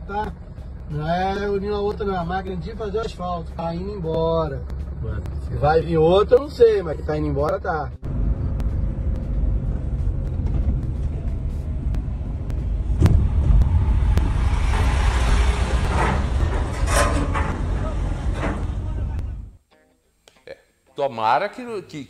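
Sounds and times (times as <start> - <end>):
heavy truck engine drone: 0.0 - 19.6
road noise: 0.0 - 19.6
sharp knock: 12.5 - 16.4.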